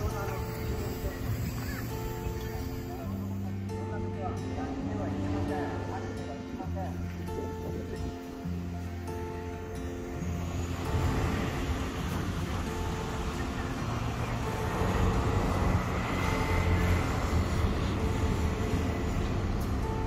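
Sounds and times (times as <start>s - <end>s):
passing vehicles rushing: 0.0s - 20.0s
soft background music: 0.0s - 20.0s.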